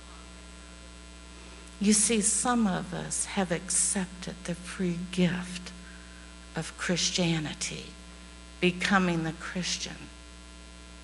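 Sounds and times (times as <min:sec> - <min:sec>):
electrical mains hum: 0:00.0 - 0:11.0
woman speaking: 0:01.8 - 0:05.8, 0:06.6 - 0:08.0, 0:08.6 - 0:10.1.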